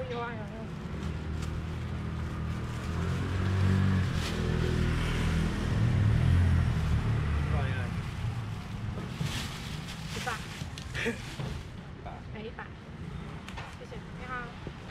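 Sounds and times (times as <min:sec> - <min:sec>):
low engine rumble: 0:00.0 - 0:12.2.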